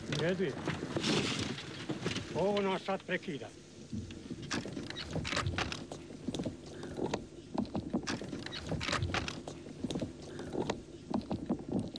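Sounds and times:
crackles and sharp knocks: 0:00.0 - 0:02.9, 0:03.7 - 0:11.9.

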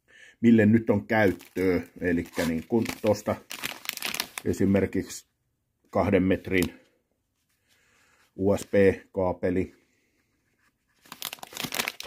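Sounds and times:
plastic bag crinkling: 0:01.1 - 0:04.7, 0:11.0 - 0:12.0.

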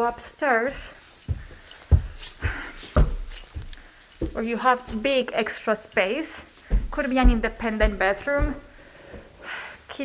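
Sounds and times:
footsteps on carpeted stairs: 0:00.0 - 0:09.6
rustling: 0:00.8 - 0:09.4.

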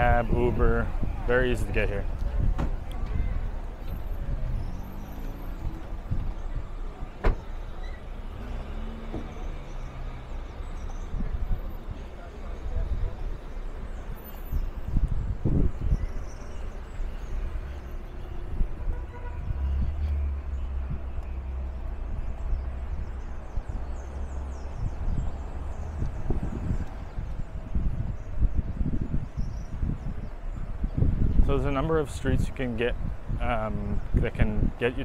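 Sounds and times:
car traffic going by: 0:00.0 - 0:35.0
wind rumbling on microphone: 0:00.0 - 0:35.0.

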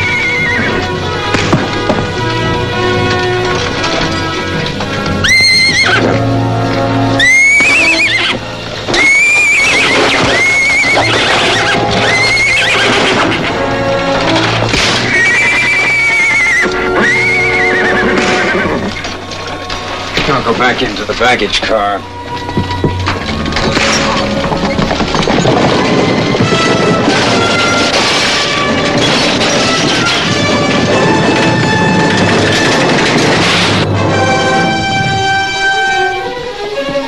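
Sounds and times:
horses whinnying: 0:00.0 - 0:20.8
orchestral film score: 0:00.0 - 0:37.0.

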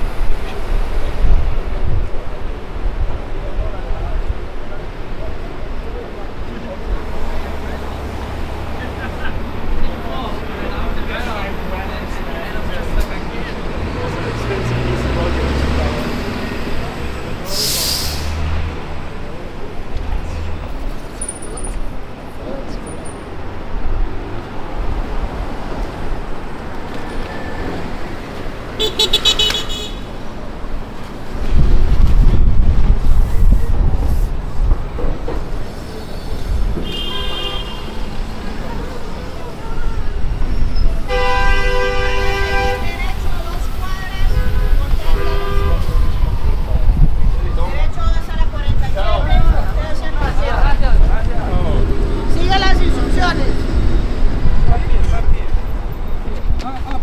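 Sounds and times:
heavy vehicle engine rumbling: 0:00.0 - 0:57.0.

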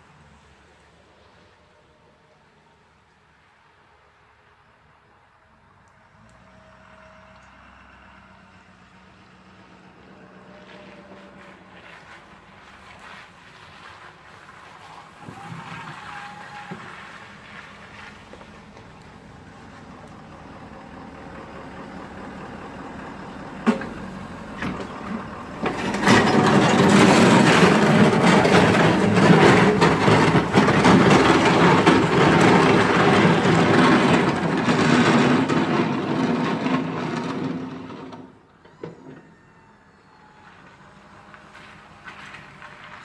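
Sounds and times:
diesel pickup engine running: 0:16.2 - 0:38.6.

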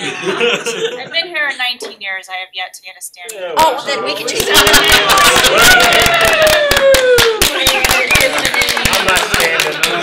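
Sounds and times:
people clapping: 0:04.2 - 0:10.0.

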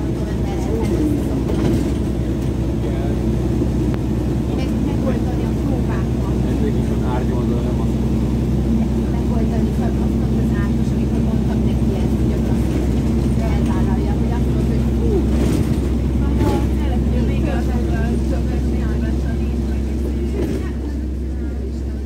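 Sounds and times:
bus engine low drone: 0:00.0 - 0:22.0
faint passengers' voices: 0:00.0 - 0:22.0.

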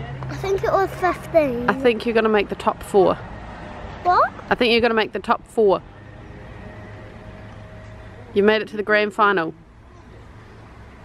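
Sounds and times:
low outdoor background hum: 0:00.0 - 0:11.0.

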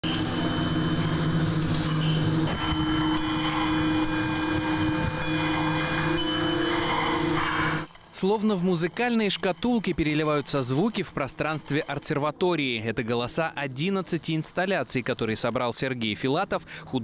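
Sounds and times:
bell-like metallic strikes: 0:00.0 - 0:12.5
low hum of held tones: 0:00.0 - 0:17.0.

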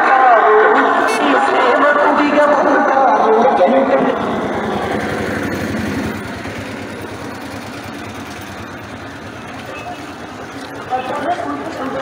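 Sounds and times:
small engine running with pulsing beat: 0:02.6 - 0:12.0.

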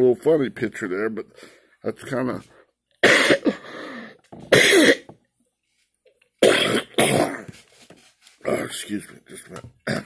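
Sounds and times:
man coughing: 0:03.0 - 0:03.7, 0:04.5 - 0:05.1, 0:06.4 - 0:07.5.

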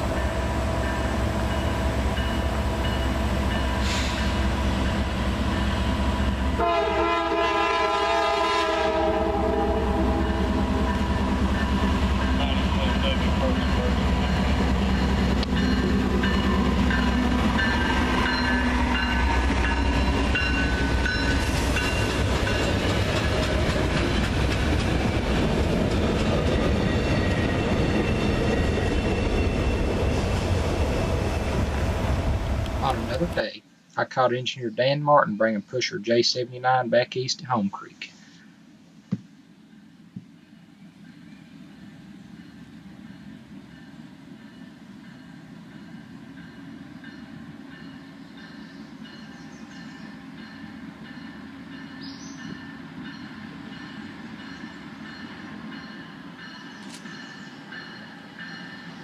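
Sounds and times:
diesel locomotive engines running: 0:00.0 - 0:33.5
train horn: 0:06.6 - 0:11.0.

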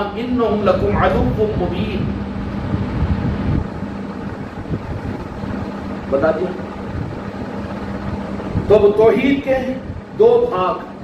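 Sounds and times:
low uneven rumbling: 0:00.0 - 0:11.0
steady hum: 0:00.0 - 0:11.0.

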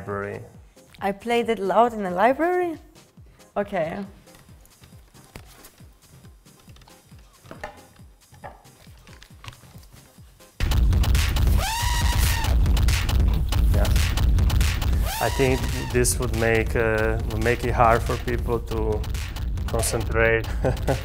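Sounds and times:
vinyl record handling: 0:04.2 - 0:10.3
electronic music with heavy bass: 0:10.6 - 0:21.0.

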